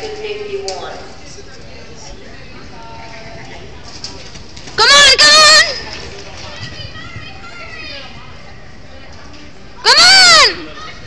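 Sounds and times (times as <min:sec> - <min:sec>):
spectators talking and calling: 0:00.0 - 0:11.0.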